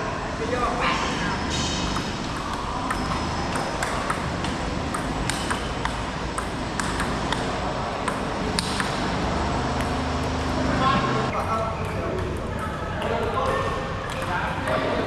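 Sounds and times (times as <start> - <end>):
hall background noise: 0.0 - 15.0
table tennis ball clicking: 2.0 - 9.1, 9.7 - 10.6.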